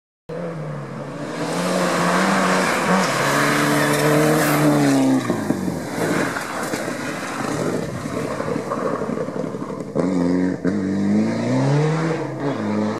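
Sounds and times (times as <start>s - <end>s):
rally car engine at high revs: 0.3s - 12.9s
tyres on loose dirt: 1.9s - 10.8s.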